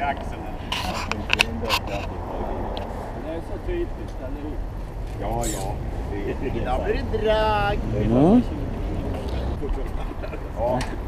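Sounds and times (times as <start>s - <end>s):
group talking quietly: 0.0s - 11.0s.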